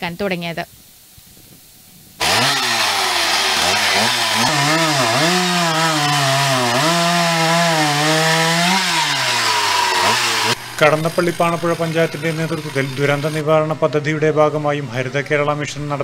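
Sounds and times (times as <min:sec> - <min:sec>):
chainsaw cutting through tree trunk: 0:02.2 - 0:13.4.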